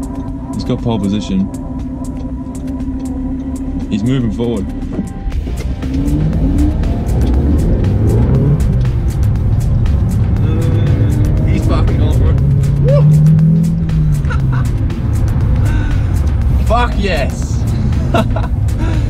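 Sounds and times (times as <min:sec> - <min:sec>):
car engine: 0:00.0 - 0:19.0
road noise: 0:00.0 - 0:19.0.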